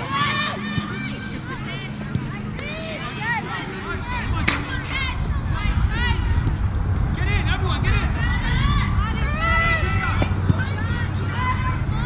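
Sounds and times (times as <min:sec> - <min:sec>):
low wind rumble on microphone: 0:00.0 - 0:12.0.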